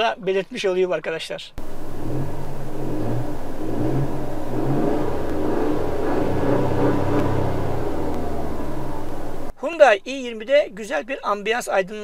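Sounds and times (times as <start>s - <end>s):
car engine low growl: 1.6s - 9.5s.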